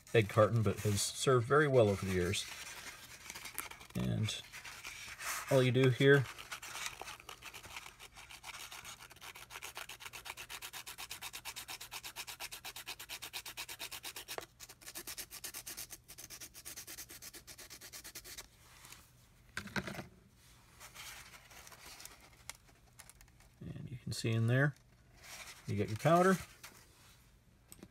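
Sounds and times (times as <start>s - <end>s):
pastel rasping on sandpaper: 0.0s - 18.4s, 25.2s - 26.8s.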